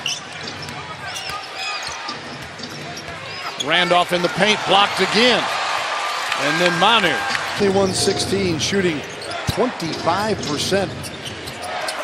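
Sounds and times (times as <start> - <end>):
sneaker squeaks: 0.0 - 4.0, 9.0 - 10.0, 11.0 - 12.0
arena crowd noise: 0.0 - 12.0.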